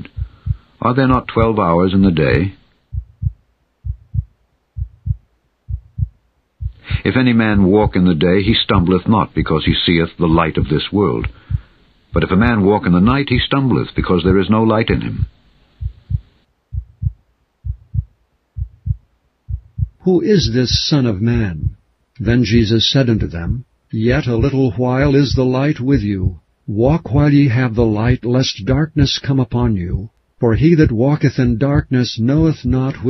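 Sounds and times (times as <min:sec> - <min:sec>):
heartbeat thumps: 0:00.0 - 0:09.5, 0:10.3 - 0:13.5, 0:14.3 - 0:21.8, 0:23.2 - 0:26.4, 0:28.0 - 0:28.8, 0:30.6 - 0:32.9.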